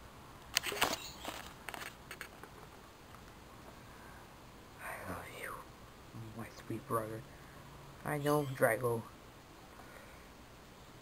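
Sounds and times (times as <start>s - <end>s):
person speaking softly: 4.8s - 7.3s.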